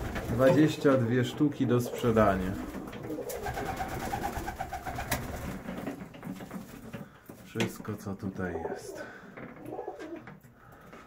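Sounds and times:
pigeons cooing: 1.7s - 5.2s, 8.6s - 10.3s.

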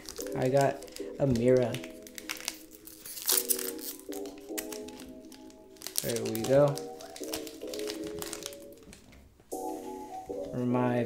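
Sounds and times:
foil wrapper crinkling: 0.0s - 9.2s
background music with chords: 0.0s - 11.0s.

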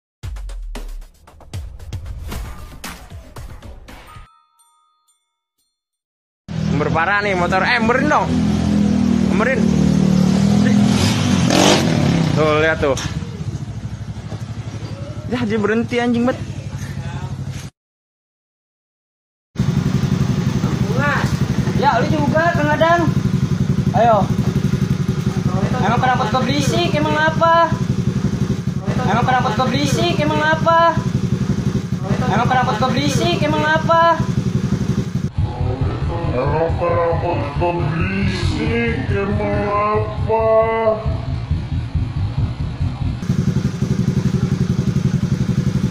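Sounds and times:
scooter engine revving: 8.0s - 15.5s, 19.6s - 45.9s.

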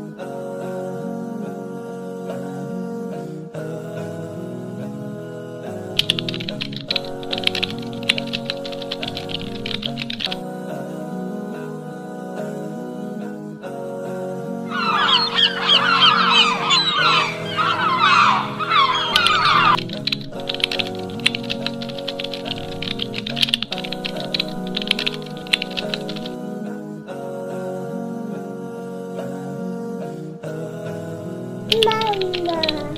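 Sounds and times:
soft background music: 0.0s - 32.9s
keyboard typing clicks: 6.0s - 10.4s, 19.1s - 26.4s, 31.7s - 32.9s.

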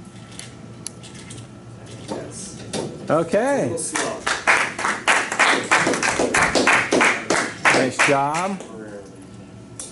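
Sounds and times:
hands clapping: 3.9s - 8.7s.

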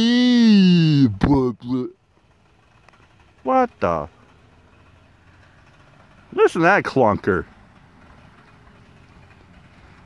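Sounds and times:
old car engine rumble: 0.0s - 10.0s.

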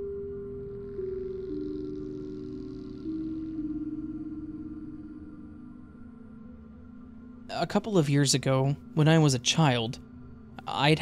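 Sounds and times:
dark ambient music: 0.0s - 11.0s.

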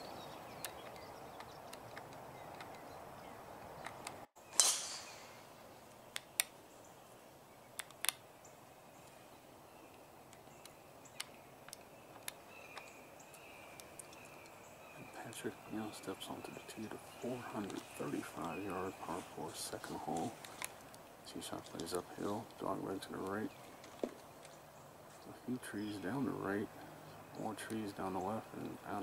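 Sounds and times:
sharp ringing crack: 4.4s - 5.6s.

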